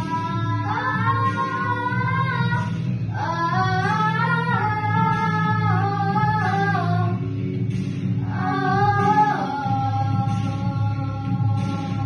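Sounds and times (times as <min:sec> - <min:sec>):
girls singing a pop song: 0:00.0 - 0:12.0
guitar backing track: 0:00.0 - 0:12.0.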